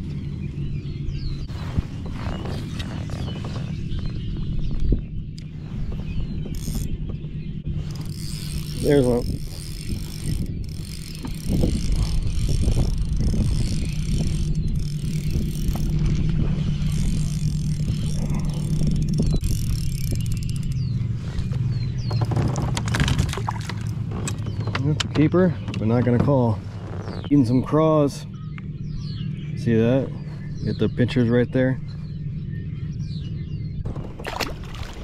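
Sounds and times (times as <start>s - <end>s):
fishing reel whirring and clicking: 6.5s - 7.0s, 7.8s - 20.9s
knocks and rattles: 22.0s - 26.5s.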